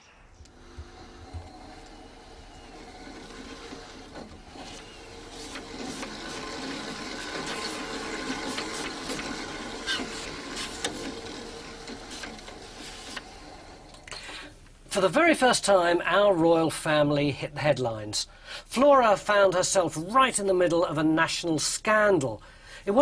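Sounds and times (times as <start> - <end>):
mechanical whirr: 0.1 - 14.2.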